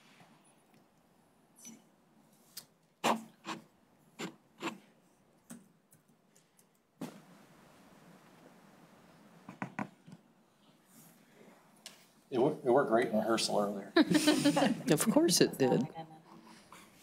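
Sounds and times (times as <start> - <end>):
steady hiss: 14.1 - 14.9.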